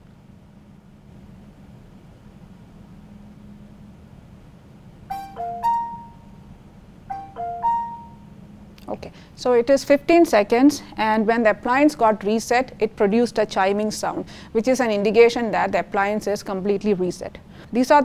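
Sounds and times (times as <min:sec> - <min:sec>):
four-note electronic chime: 0:05.1 - 0:06.4, 0:07.1 - 0:08.4.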